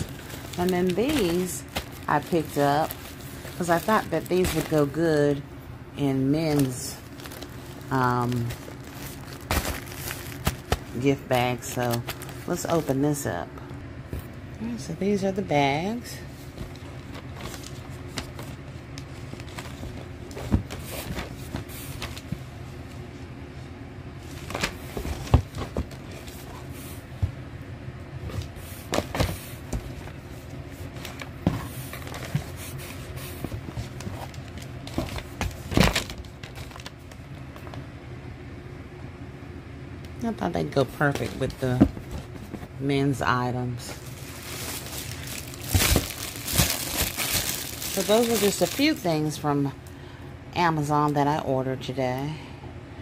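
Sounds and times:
paper bags rustling: 0:00.0 - 0:05.4, 0:06.0 - 0:13.2, 0:28.4 - 0:37.8, 0:43.6 - 0:49.3
steady low hum: 0:00.0 - 0:53.0.

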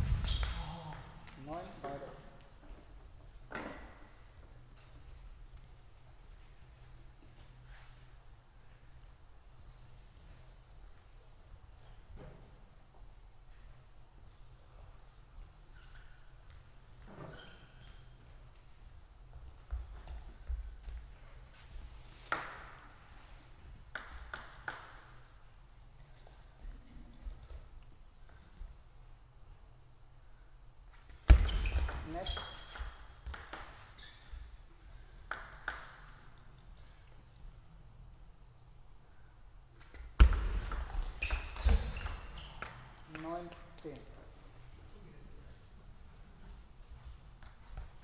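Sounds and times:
table tennis ball hits: 0:23.9 - 0:25.2, 0:35.3 - 0:36.2.

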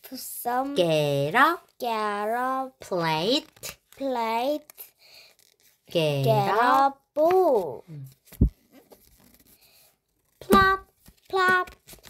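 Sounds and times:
paper rustling: 0:02.1 - 0:12.0
book page turning thump: 0:08.2 - 0:09.4, 0:10.4 - 0:12.0.

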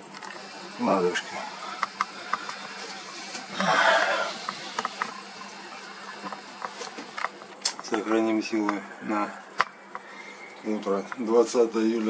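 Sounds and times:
crickets chirping: 0:00.0 - 0:12.0
faint clicks: 0:01.6 - 0:03.6, 0:04.3 - 0:08.0, 0:09.6 - 0:11.3.

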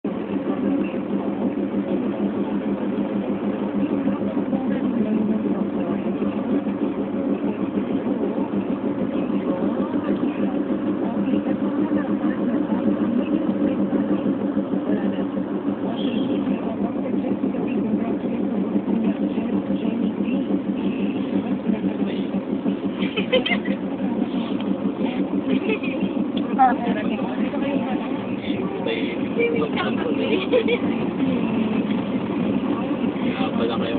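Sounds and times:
car interior engine and road noise: 0:00.0 - 0:33.9.

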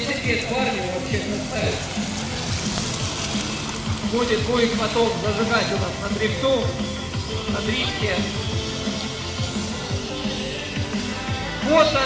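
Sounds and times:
tyres hissing through water: 0:00.0 - 0:11.2
music: 0:00.0 - 0:12.0.

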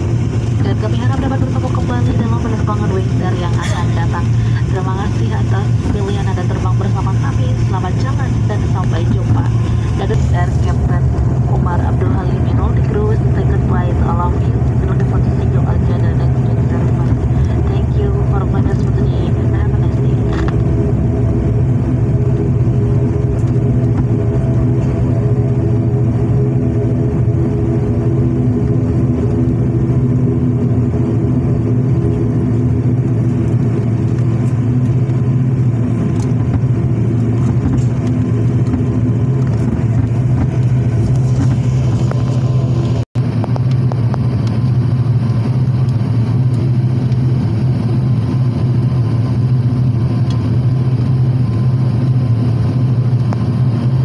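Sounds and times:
turboprop engines droning: 0:00.0 - 0:54.0.

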